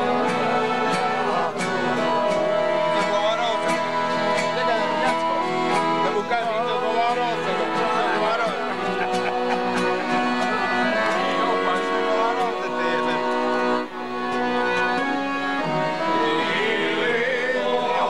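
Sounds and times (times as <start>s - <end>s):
accordion music: 0.0s - 18.0s
guitar: 0.0s - 18.0s
voices: 0.0s - 18.0s.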